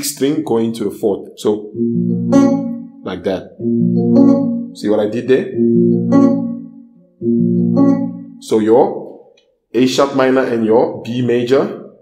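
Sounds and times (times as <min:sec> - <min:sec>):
electric guitar finger-picked: 0:01.8 - 0:08.4.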